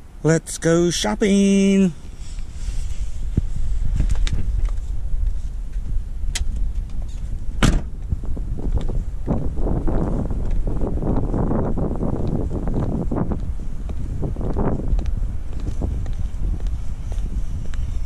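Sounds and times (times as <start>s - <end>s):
footsteps of sandals on asphalt: 1.3s - 18.0s
wind rumbling on microphone: 1.8s - 18.0s
car door shutting: 6.3s - 8.0s.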